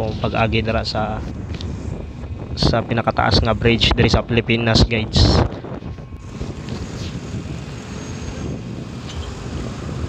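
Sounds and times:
motorcycle engine hum: 0:00.0 - 0:10.0
wind rushing on microphone: 0:00.0 - 0:10.0.

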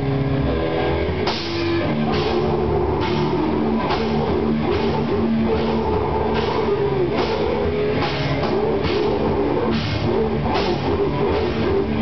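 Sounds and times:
grindcore band playing live: 0:00.0 - 0:12.0
cymbal hits: 0:01.2 - 0:11.9.

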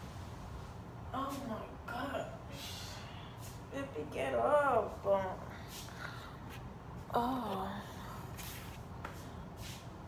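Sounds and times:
person rustling and shuffling: 0:05.6 - 0:10.0.

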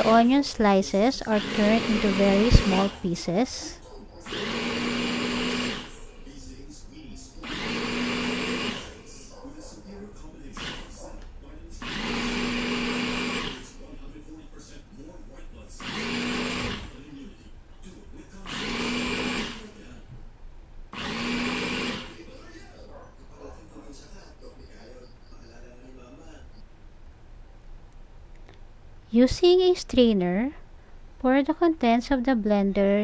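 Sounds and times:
electric blender motor whine: 0:00.0 - 0:00.2, 0:01.2 - 0:06.2, 0:07.4 - 0:09.1, 0:10.6 - 0:11.0, 0:11.8 - 0:13.9, 0:15.8 - 0:17.0, 0:18.5 - 0:19.9, 0:20.9 - 0:22.6.

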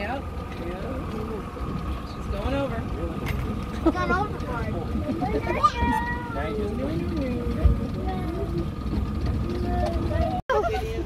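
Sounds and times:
indistinct voices talking: 0:00.0 - 0:11.0
steady low rumble: 0:00.0 - 0:11.0.

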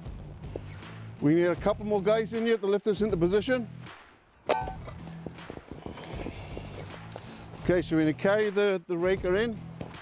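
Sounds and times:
footsteps: 0:04.6 - 0:07.8.

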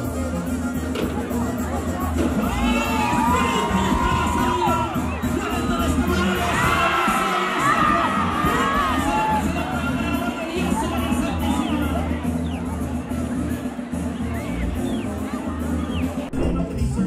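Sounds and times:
background music: 0:00.0 - 0:17.0
crowd cheering and shouting: 0:00.0 - 0:17.0.

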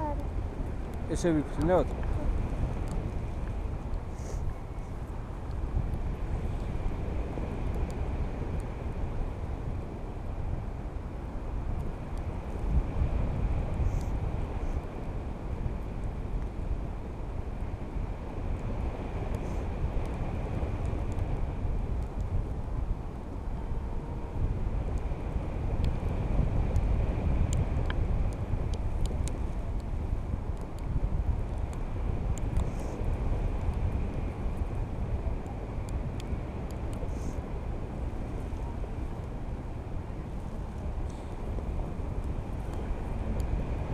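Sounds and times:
wind noise on microphone: 0:00.0 - 0:43.9.

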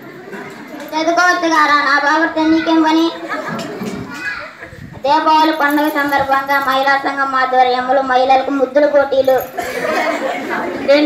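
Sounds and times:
children chattering in echoing hall: 0:00.0 - 0:11.0.

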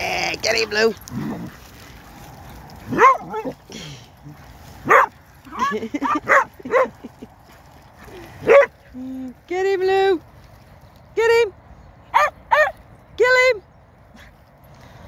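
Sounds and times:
dogs barking: 0:02.9 - 0:03.6, 0:04.8 - 0:07.0, 0:08.4 - 0:08.8, 0:12.1 - 0:12.8.

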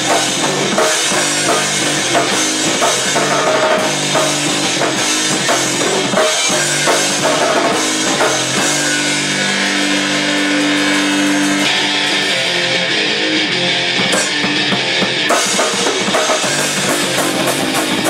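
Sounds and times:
drum kit: 0:00.0 - 0:18.0
electric guitar chord: 0:00.0 - 0:18.0.

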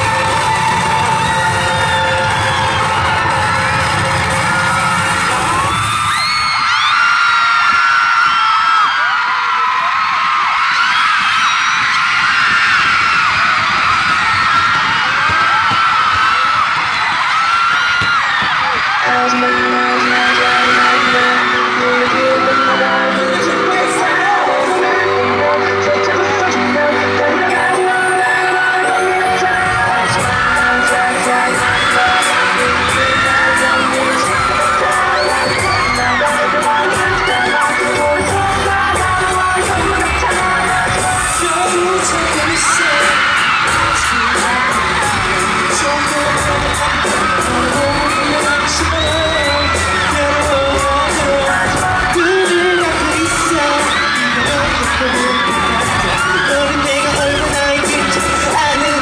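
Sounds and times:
crowd screaming and cheering: 0:00.0 - 0:59.0
pop song over sound system: 0:00.0 - 0:59.0.

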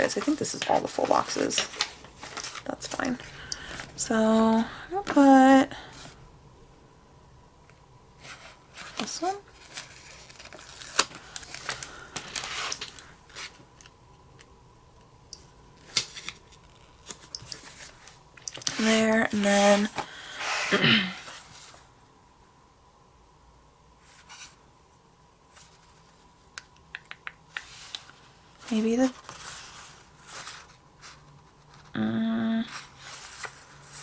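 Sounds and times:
woman humming: 0:32.0 - 0:32.7.

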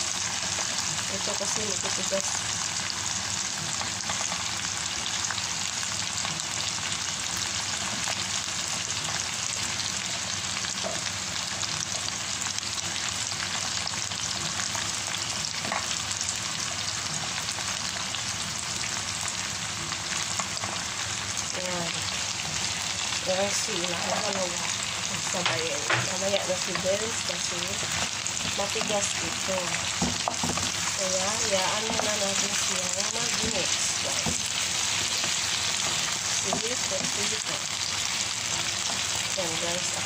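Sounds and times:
vegetables sizzling in oil: 0:00.0 - 0:40.0.

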